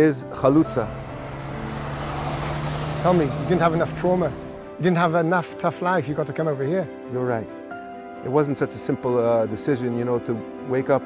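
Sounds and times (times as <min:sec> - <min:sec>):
heavy truck driving past: 0:00.4 - 0:04.8.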